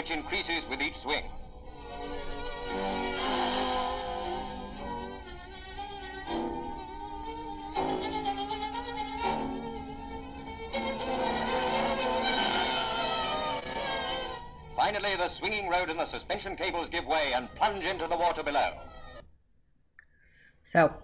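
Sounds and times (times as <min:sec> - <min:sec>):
bowed strings long held notes: 0:00.0 - 0:19.2.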